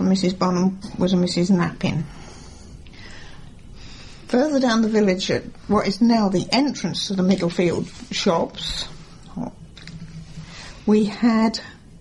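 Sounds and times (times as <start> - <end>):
woman speaking: 0.0 - 2.1, 4.3 - 9.6, 10.8 - 11.8.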